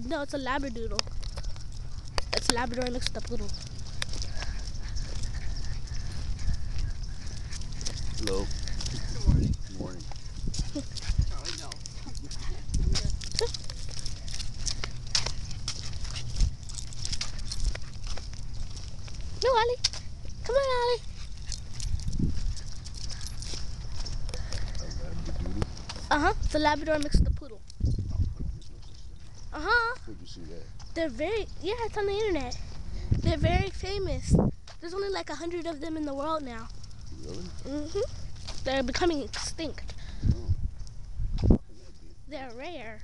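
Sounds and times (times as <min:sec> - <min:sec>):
low steady rumble: 0:00.0 - 0:43.0
footsteps on concrete: 0:00.9 - 0:26.6, 0:34.6 - 0:34.8.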